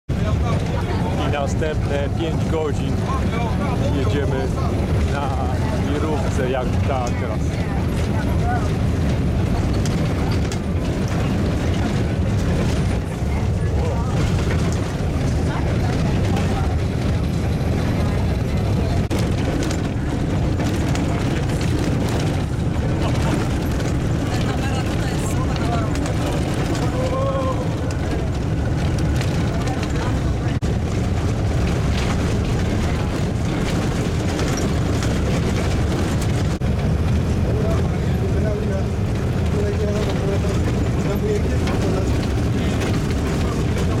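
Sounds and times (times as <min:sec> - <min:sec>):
coach engine and tyre noise on gravel: 0:00.1 - 0:44.0
faint passenger voices: 0:00.1 - 0:44.0.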